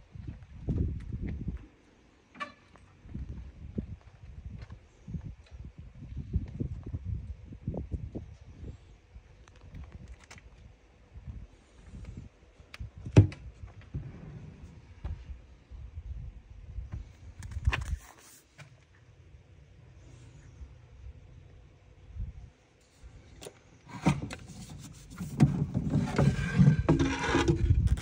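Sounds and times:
rough rubbing and scraping: 0:23.9 - 0:28.0.

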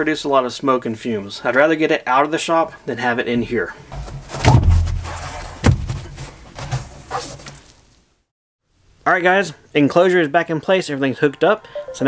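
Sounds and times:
enclosure thud: 0:03.9 - 0:07.4
soft knocks and rustling: 0:03.9 - 0:07.8.

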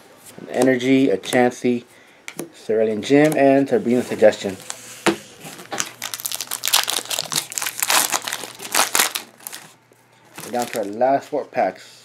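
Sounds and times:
foil wrapper crinkling: 0:05.5 - 0:11.0.

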